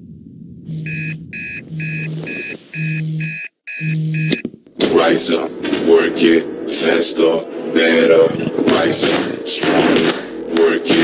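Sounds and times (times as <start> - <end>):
low rumble: 0.0 - 3.2, 4.7 - 10.6
electronic alarm beeping: 0.8 - 4.4.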